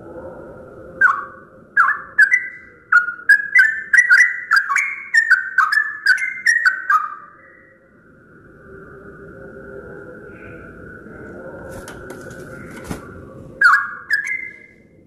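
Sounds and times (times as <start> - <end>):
bird singing chirped notes: 1.0 - 8.0, 13.6 - 14.8.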